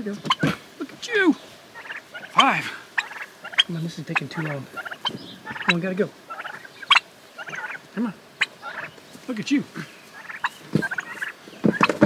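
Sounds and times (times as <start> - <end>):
young turkeys chirping: 0.0 - 12.0.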